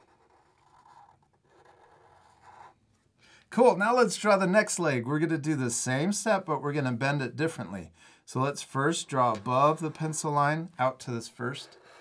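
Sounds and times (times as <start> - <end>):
marker scratching on paper: 0.0 - 2.8.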